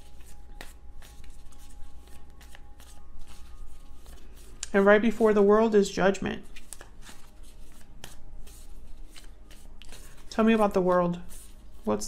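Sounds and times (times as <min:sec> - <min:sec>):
cards being shuffled: 0:00.0 - 0:05.3, 0:06.4 - 0:12.0.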